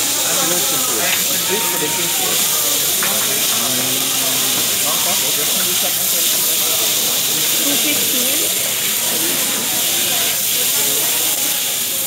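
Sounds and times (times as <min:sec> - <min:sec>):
rice sizzling on a griddle: 0:00.0 - 0:12.0.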